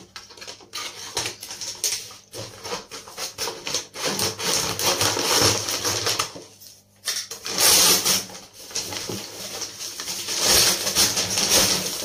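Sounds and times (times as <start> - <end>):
paper crinkling: 7.4 - 12.0.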